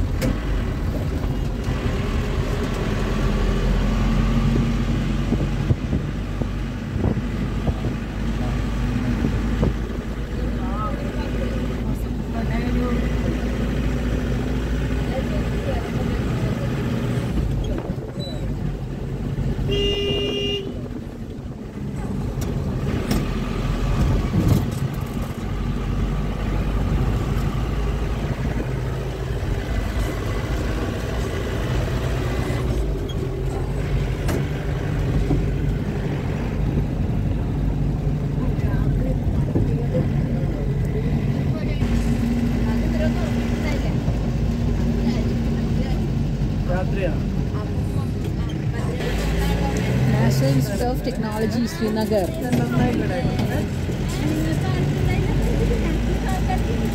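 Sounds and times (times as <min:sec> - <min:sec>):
vehicle engine and road noise: 0:00.0 - 0:56.9
vehicle horn toot: 0:19.6 - 0:20.9.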